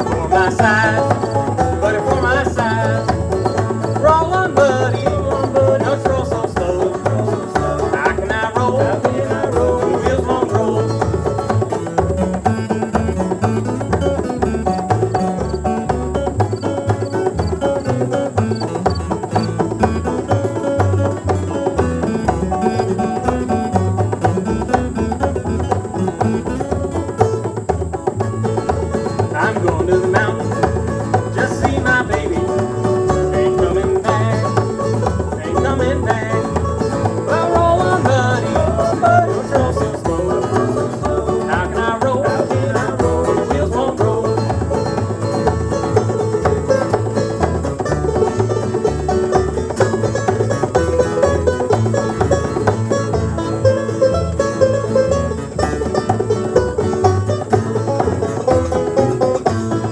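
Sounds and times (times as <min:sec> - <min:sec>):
acoustic guitar picking: 0:00.0 - 0:59.9
banjo picking: 0:00.0 - 0:59.9
hand drum: 0:00.0 - 0:59.9
upright bass: 0:00.0 - 0:59.9.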